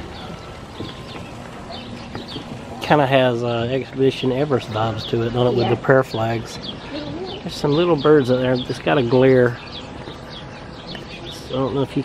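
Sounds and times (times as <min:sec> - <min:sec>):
footsteps on wooden boards: 0:00.0 - 0:02.9
outdoor background noise: 0:00.0 - 0:12.0.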